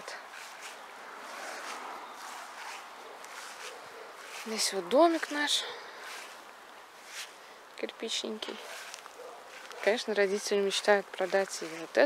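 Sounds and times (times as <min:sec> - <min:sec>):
distant highway traffic: 0:00.0 - 0:12.0.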